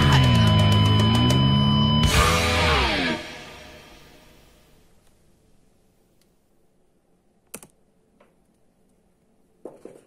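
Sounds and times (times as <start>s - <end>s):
computer keys clicking: 7.5s - 7.8s.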